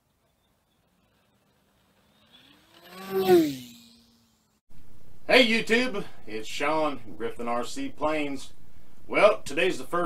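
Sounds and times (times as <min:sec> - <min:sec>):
model airplane motor whining: 0:00.4 - 0:04.6.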